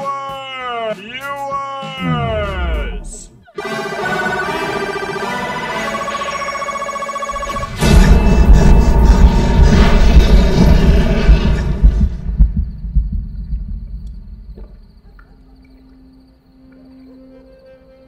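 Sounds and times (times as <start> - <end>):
low throbbing rumble: 7.4 - 15.0.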